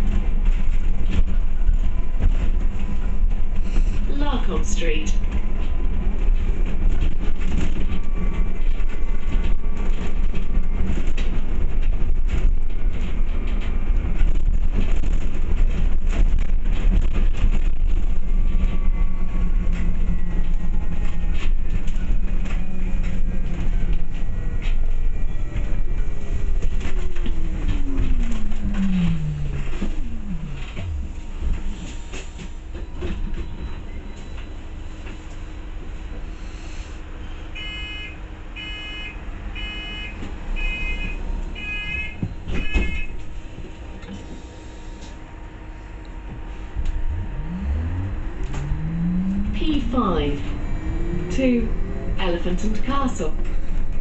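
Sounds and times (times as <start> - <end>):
bus road rumble: 0.0 - 54.0
drive whine falling in pitch: 27.5 - 31.8, 46.1 - 54.0.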